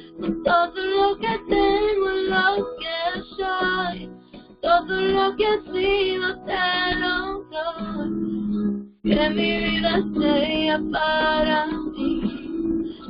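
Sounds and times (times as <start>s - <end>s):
guitar accompaniment: 0.0s - 13.0s.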